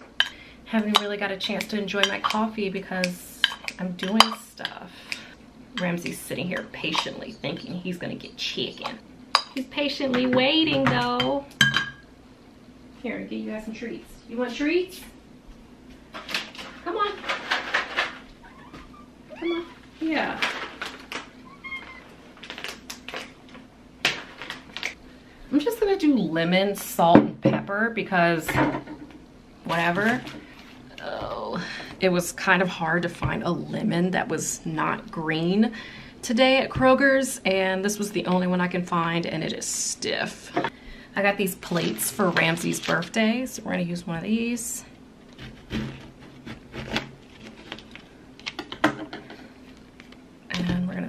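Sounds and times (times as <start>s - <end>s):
animal chirp: 18.4s - 19.8s, 21.4s - 22.1s.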